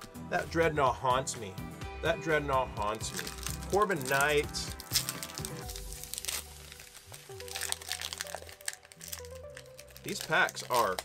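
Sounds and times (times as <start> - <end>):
background music: 0.0 - 11.0
foil wrapper crinkling: 2.8 - 11.0.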